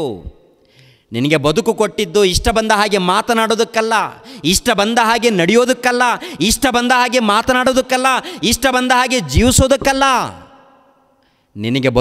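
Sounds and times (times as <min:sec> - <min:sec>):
man preaching: 0:00.0 - 0:00.4, 0:01.1 - 0:12.0.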